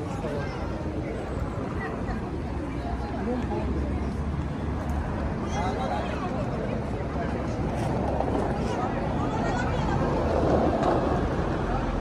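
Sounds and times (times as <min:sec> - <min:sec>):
low traffic rumble: 0:00.0 - 0:12.0
voices of passers-by: 0:00.0 - 0:12.0.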